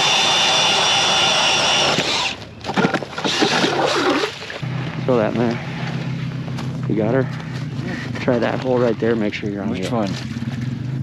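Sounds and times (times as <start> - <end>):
small engine running with whine: 0.0 - 11.0.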